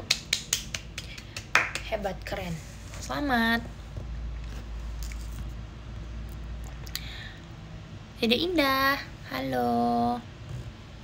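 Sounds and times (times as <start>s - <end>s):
person clapping hands: 0.0s - 1.9s.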